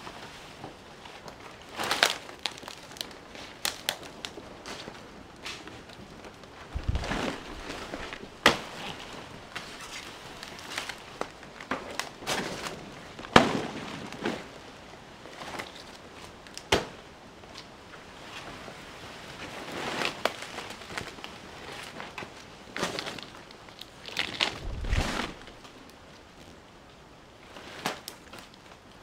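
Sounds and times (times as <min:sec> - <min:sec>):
banana leaves rustling and crackling: 0:00.0 - 0:29.0
sharp snaps of leaves: 0:01.8 - 0:04.4
dry leaves crunching underfoot: 0:06.7 - 0:11.1, 0:24.0 - 0:25.9.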